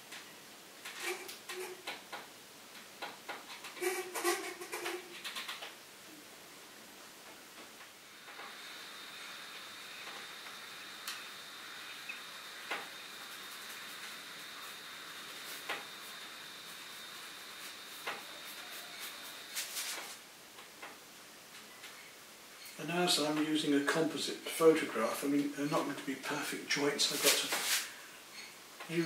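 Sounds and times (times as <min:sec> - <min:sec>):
thin high whine: 0:08.0 - 0:20.2, 0:21.7 - 0:29.0.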